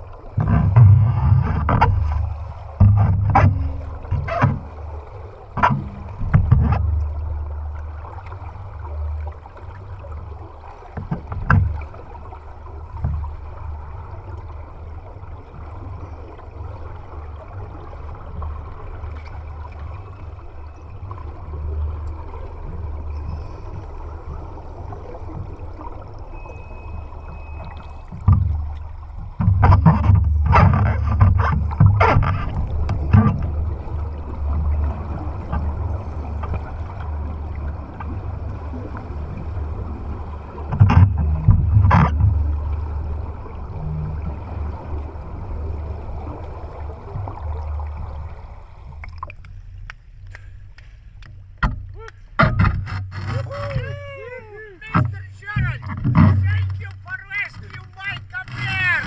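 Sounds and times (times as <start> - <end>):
underwater rumble of rushing water: 0.0 - 59.0
water sloshing: 0.0 - 59.0.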